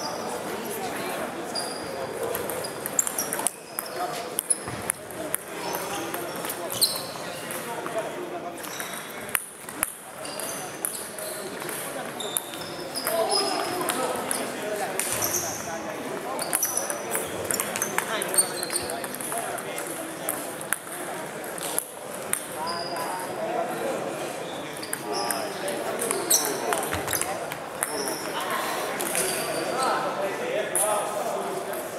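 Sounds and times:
shoes squeaking on wooden floor: 0:05.6 - 0:07.2, 0:26.1 - 0:28.4.

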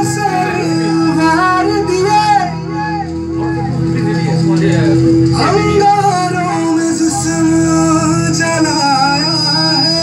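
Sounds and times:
man singing into a microphone: 0:00.0 - 0:04.5, 0:05.3 - 0:10.0.

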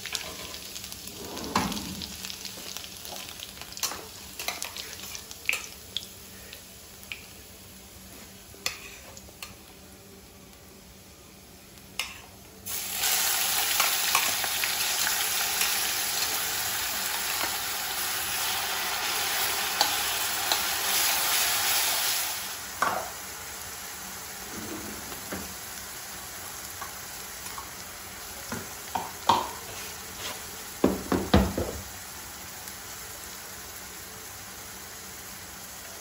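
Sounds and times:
paste sizzling in hot oil: 0:12.0 - 0:30.9.

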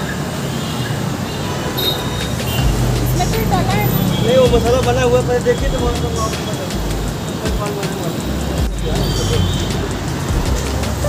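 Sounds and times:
people talking: 0:02.1 - 0:11.0
low rumble: 0:02.6 - 0:06.1.

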